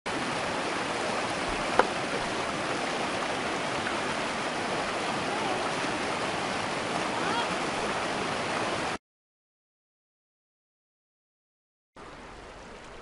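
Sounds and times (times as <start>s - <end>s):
river rapids rushing over rocks: 0.1s - 9.0s.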